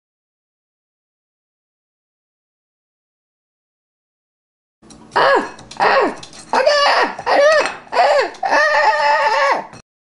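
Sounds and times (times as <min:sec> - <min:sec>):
person yelling: 0:05.2 - 0:09.7.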